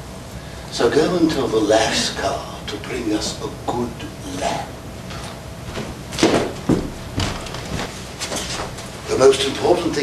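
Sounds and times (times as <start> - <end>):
knocks and scuffs on stage: 5.7 - 8.9.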